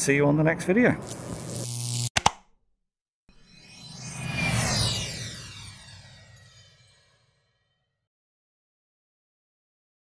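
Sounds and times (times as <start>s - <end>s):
whoosh with sweeping tones: 3.3s - 7.6s.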